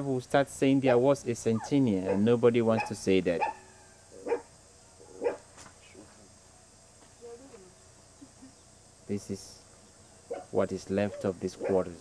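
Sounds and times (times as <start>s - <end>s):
dog barking: 0.9s - 3.6s, 4.2s - 4.5s, 5.2s - 5.4s, 10.3s - 12.0s.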